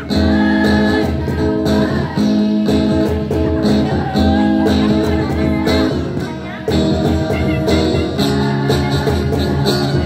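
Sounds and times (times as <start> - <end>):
choir singing: 0.0 - 6.2, 7.6 - 10.0
acoustic guitar: 0.0 - 10.0
percussion beat: 0.0 - 10.0.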